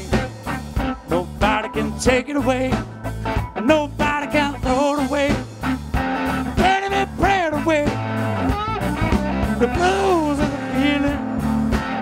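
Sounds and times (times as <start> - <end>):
person singing: 0.0 - 2.9, 3.6 - 5.5, 6.5 - 8.0, 9.4 - 12.0
bass guitar: 0.0 - 12.0
drums: 0.0 - 12.0
electric guitar: 0.0 - 12.0.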